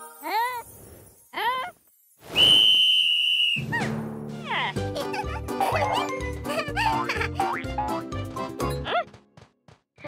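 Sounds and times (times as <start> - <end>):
sports whistle blast: 2.3 - 3.7.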